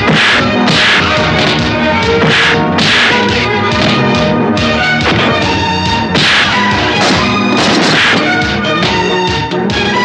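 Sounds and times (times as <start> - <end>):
swishing punch hits: 0.0 - 4.1, 5.0 - 9.0
background music score: 0.0 - 10.0.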